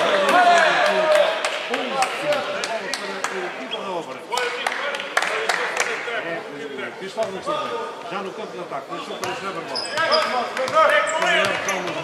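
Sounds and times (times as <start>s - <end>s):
voices calling out in a hall: 0.0s - 12.0s.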